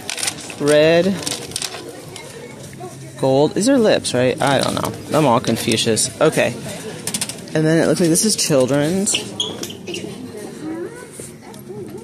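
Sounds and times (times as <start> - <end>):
people talking nearby: 0.6 - 12.0
quiet wavering background voice: 1.0 - 3.4, 9.2 - 12.0.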